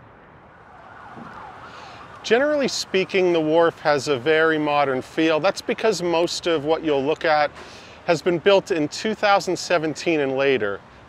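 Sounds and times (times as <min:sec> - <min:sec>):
faint siren wailing: 0:00.0 - 0:07.4
city background noise: 0:00.0 - 0:11.0.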